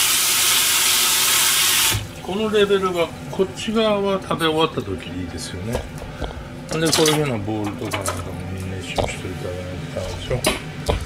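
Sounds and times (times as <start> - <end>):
faucet water running onto dishes: 0.0 - 3.1.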